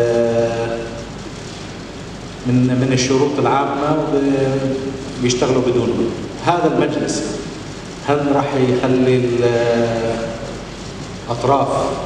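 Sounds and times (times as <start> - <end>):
hall noise: 0.0 - 12.0.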